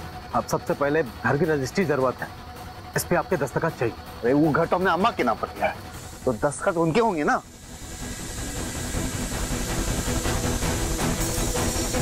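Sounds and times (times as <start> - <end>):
dramatic background score: 0.0 - 12.0.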